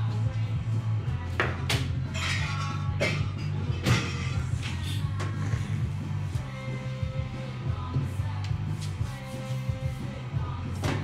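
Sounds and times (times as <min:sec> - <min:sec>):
background music with bass: 0:00.0 - 0:11.0
glasses and bottles clinking: 0:02.1 - 0:04.5.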